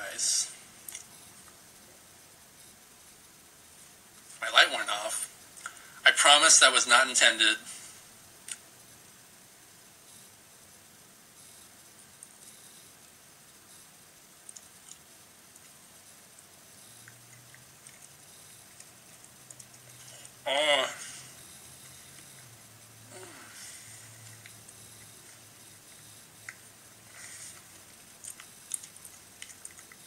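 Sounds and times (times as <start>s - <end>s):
low steady hum: 0.0s - 30.0s
man chewing banana: 14.4s - 20.4s, 24.0s - 30.0s.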